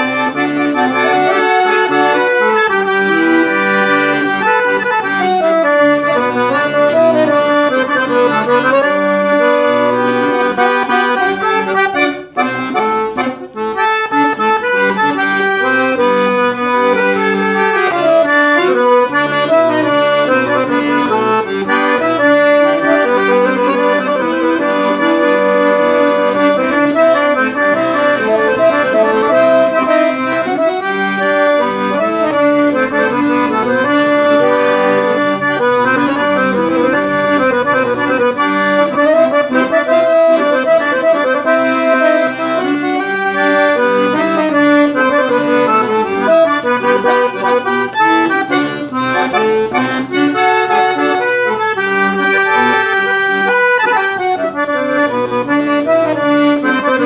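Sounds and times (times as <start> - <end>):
solo accordion melody: 0.0 - 57.0.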